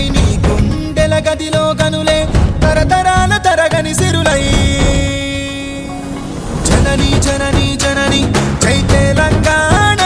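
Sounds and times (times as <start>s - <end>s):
drums: 0.0s - 5.6s, 6.4s - 10.0s.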